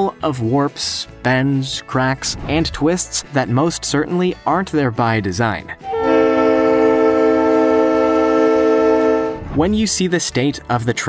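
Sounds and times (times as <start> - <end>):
locomotive air horn: 5.8 - 9.6.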